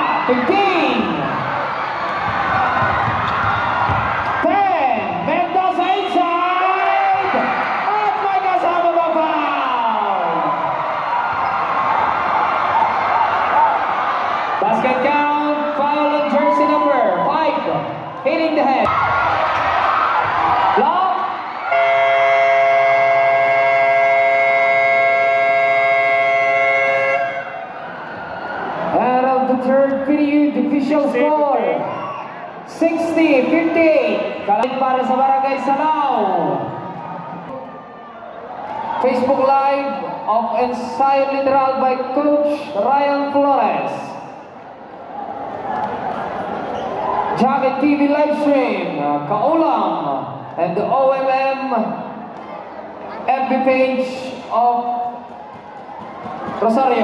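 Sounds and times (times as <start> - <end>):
crowd shouting and whooping: 0.0 - 29.1, 31.5 - 34.9, 36.1 - 40.5, 44.5 - 47.6, 54.5 - 57.0
arena buzzer: 21.7 - 27.6.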